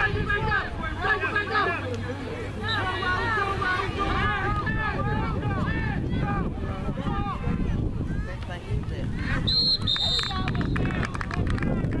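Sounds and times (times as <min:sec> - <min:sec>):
voices of spectators and players: 0:00.0 - 0:12.0
referee's whistle blast: 0:09.5 - 0:10.8.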